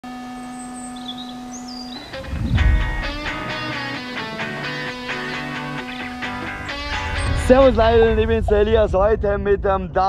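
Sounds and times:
steady low hum: 0.1 - 10.0
birds chirping: 0.3 - 8.7.

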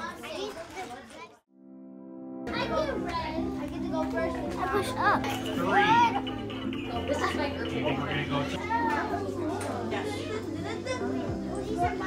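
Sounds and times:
children chattering: 0.0 - 1.4, 2.5 - 12.0
background music: 1.5 - 12.0.

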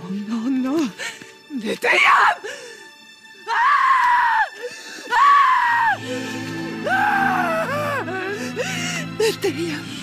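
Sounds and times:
woman screaming in grief: 5.1 - 6.0, 6.8 - 8.3.

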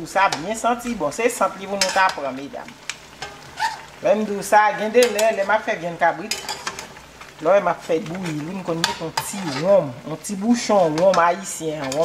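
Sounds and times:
metal spoon scraping a pot: 1.8 - 2.2, 8.2 - 9.8.

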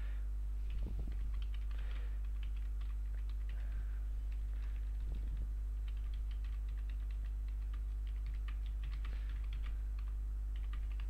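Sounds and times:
low electrical hum: 0.0 - 11.0
computer keyboard typing: 0.7 - 11.0.

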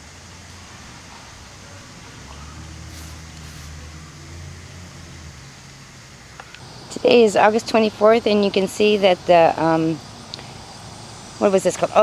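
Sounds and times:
faint low hum: 0.0 - 12.0
outdoor hiss: 0.0 - 12.0.

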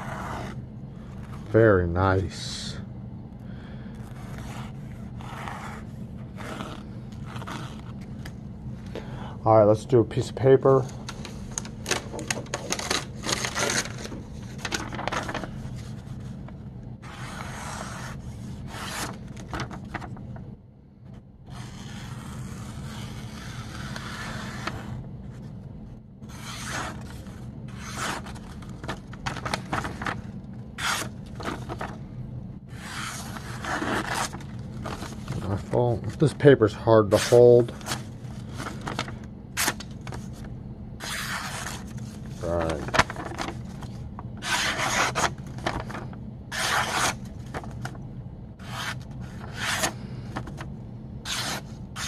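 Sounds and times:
paper rustling: 10.8 - 20.2, 26.3 - 32.0, 32.8 - 36.4, 37.1 - 48.0, 48.6 - 52.0
knife slicing paper: 26.3 - 30.2, 41.0 - 43.6, 44.4 - 47.8, 48.6 - 50.6, 51.2 - 52.0.

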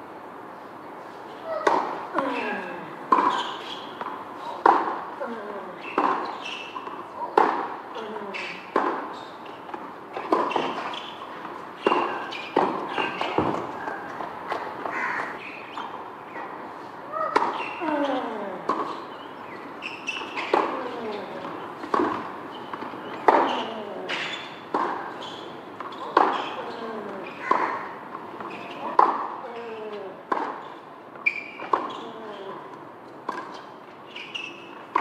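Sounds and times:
tennis ball struck by rackets: 1.6 - 2.0, 3.1 - 5.0, 5.8 - 7.7, 8.5 - 9.1, 9.8 - 11.1, 17.3 - 17.6, 21.8 - 25.2, 26.1 - 26.6, 27.5 - 27.9, 30.3 - 30.6.

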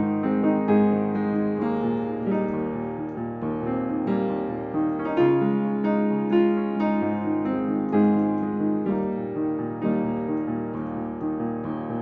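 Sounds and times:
solo piano melody: 0.0 - 12.0.

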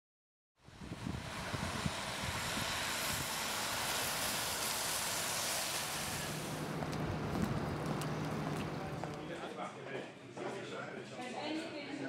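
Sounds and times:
outdoor rushing noise: 0.6 - 9.5.

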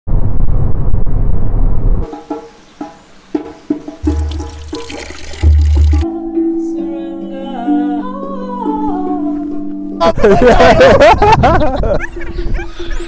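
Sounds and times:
plucked notes: 2.2 - 11.0.

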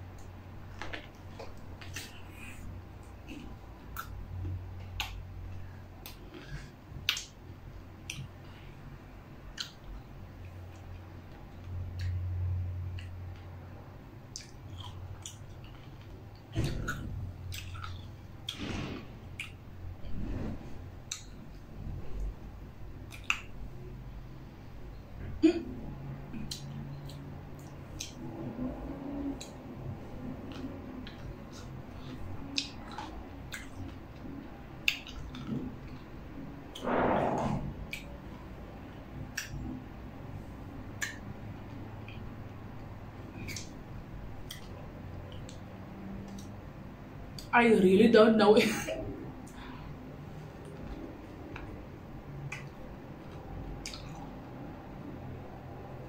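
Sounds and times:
mouth clicks and smacks: 0.1 - 5.4, 6.0 - 8.6, 9.5 - 13.5, 14.2 - 19.7, 21.0 - 21.4, 23.0 - 23.8, 26.3 - 36.8, 37.8 - 40.0, 40.8 - 46.6, 50.6 - 55.2
person chewing: 14.3 - 19.6, 30.4 - 36.0, 44.4 - 45.6, 50.6 - 54.6.

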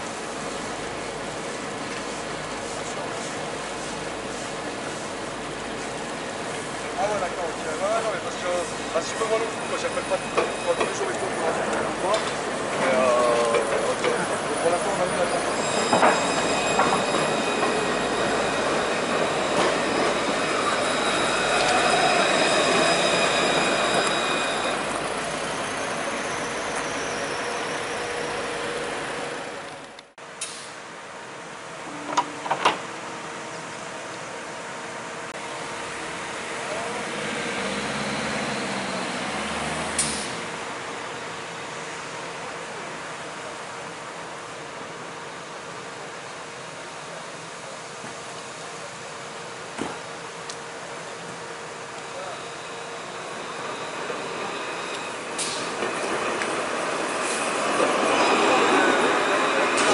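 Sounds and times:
tram wheels rolling on rails: 0.0 - 30.2, 31.8 - 34.2, 48.0 - 59.9
distant tram rolling: 0.0 - 59.9
electric tram drive whining: 49.5 - 59.9.

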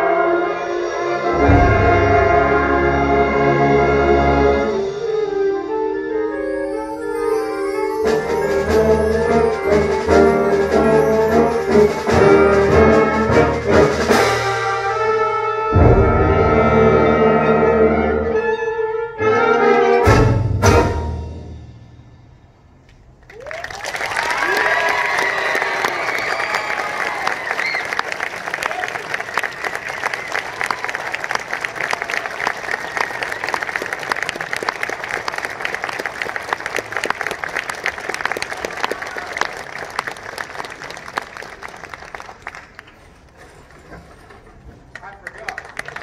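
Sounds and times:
audience applauding: 23.2 - 46.0
cheers and whoops: 23.3 - 31.4, 32.0 - 33.8, 38.6 - 39.6.

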